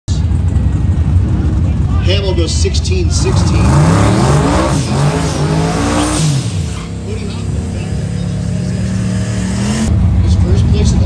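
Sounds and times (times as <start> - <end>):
truck engine idling: 0.1 - 11.0.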